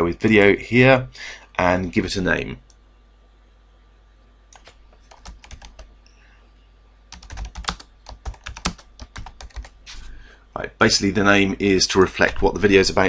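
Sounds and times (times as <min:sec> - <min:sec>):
typing on computer keyboard: 0:04.5 - 0:05.9, 0:07.1 - 0:09.8.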